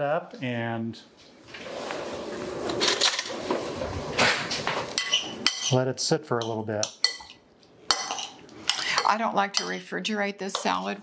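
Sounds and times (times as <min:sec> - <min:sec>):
spoon stirring wet salad: 0:04.8 - 0:05.8, 0:06.4 - 0:11.0.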